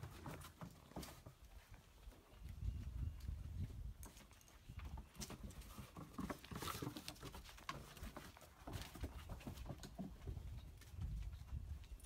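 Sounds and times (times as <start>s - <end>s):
dog paws clicking on wooden deck: 0.0s - 2.3s, 3.2s - 12.0s.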